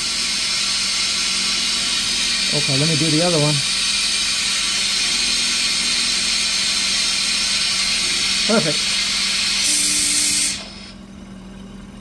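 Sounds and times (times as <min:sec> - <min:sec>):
air vacuum extractor hissing: 0:00.0 - 0:11.0.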